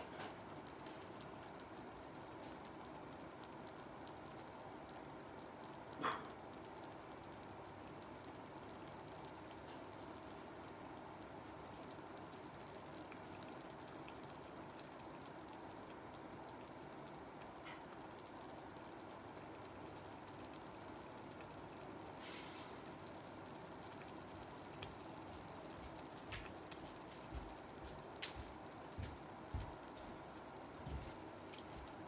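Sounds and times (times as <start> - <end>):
soup simmering: 0.0 - 32.0.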